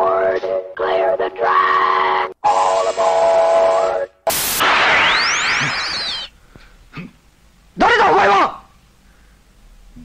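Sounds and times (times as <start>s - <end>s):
cartoon steam train hiss: 2.5s - 6.4s.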